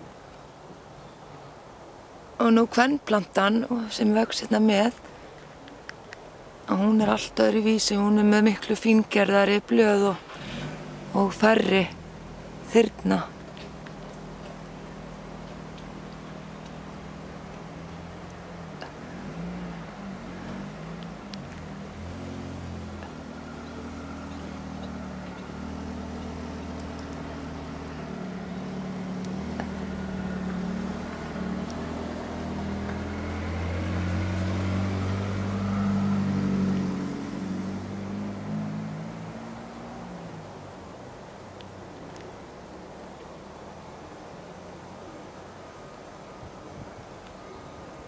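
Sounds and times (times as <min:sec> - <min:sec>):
vehicle engine hum passing: 0:06.5 - 0:48.0.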